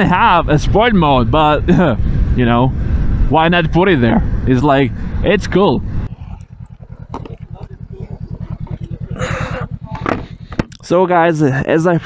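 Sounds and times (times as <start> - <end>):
motorcycle engine idling: 4.2 - 11.3
faint voices: 6.1 - 10.7.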